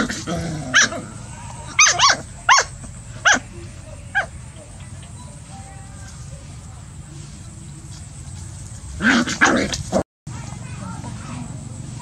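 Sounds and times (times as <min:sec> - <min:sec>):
puppy yapping and growling: 0:00.0 - 0:03.4
puppies play-fighting: 0:00.0 - 0:05.1.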